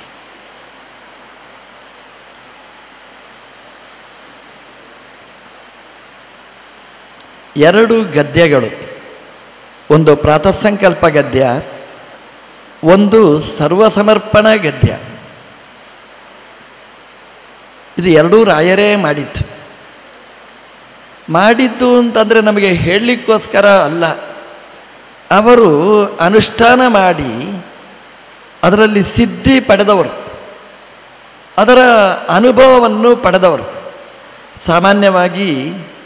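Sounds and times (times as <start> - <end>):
microphone background hiss: 0.0 - 36.0.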